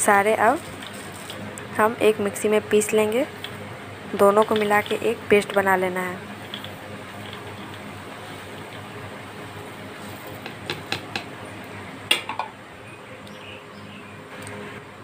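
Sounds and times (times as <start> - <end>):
seeds pouring into a steel jar: 0.4 - 1.4, 6.4 - 9.0.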